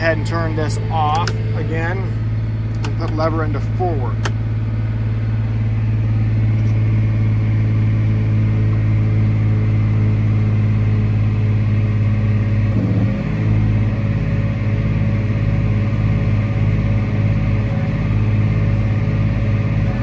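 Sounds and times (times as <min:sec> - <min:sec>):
tractor diesel engine running: 0:00.0 - 0:20.0.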